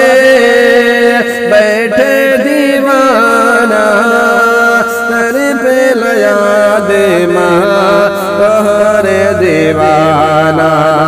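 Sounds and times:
person singing long sliding notes: 0.0 - 11.0.

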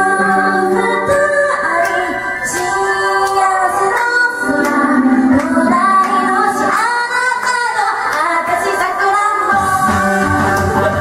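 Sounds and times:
woman singing into microphone: 0.0 - 11.0
backing track with bass and guitar: 9.5 - 11.0.

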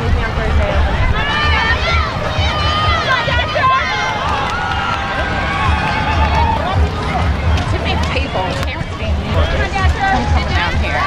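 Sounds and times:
wind rumbling on microphone: 0.0 - 11.0
spectators shouting: 0.3 - 11.0.

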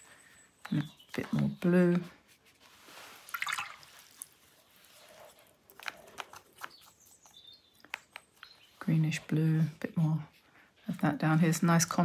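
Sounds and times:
brush working wet paint: 2.2 - 5.6
brush swishing in water: 2.3 - 5.5.

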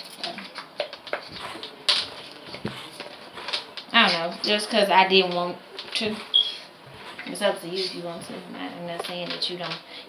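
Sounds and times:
wig rustling against phone: 5.7 - 9.9.

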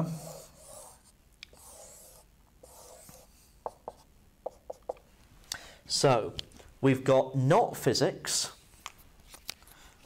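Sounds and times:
marker pen on whiteboard: 0.0 - 5.1.

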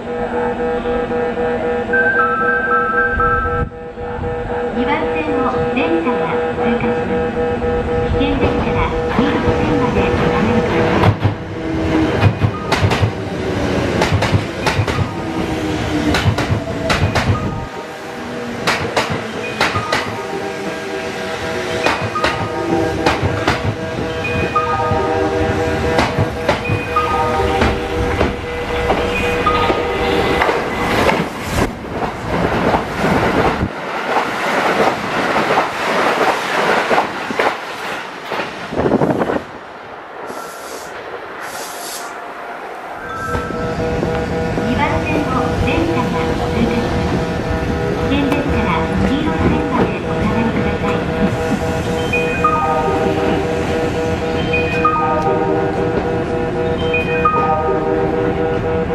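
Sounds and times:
express train passing at speed: 0.0 - 58.9
train drawing in: 0.0 - 58.9
train moving off: 5.2 - 58.9
train wheels clicking over rail joints: 13.9 - 15.1, 16.1 - 17.5.

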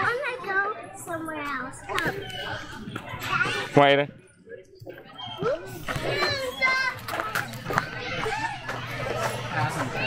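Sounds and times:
playground chatter: 0.0 - 10.0
children's high-pitched calls: 1.8 - 3.7, 5.1 - 8.8.

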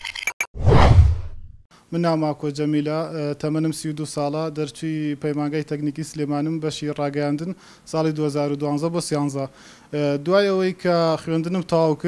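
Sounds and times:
noisy whoosh: 0.6 - 1.5.

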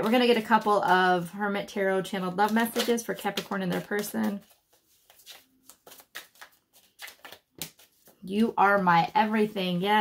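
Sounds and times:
cards being shuffled: 2.2 - 8.2.

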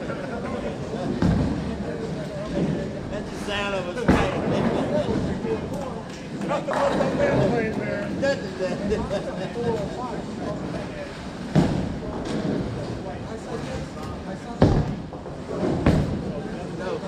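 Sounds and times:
bowling alley clatter: 0.0 - 17.0
chatter of voices: 0.0 - 17.0
bowling ball thud and roll: 4.0 - 7.7, 11.3 - 13.0, 13.8 - 16.6.

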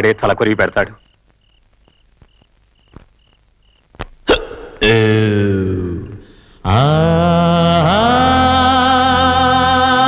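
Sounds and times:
crickets chirping: 0.0 - 6.7
man wailing: 4.3 - 6.1.

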